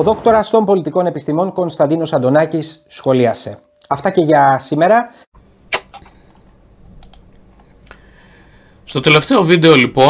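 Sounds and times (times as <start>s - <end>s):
computer clicks: 7.0s - 7.3s.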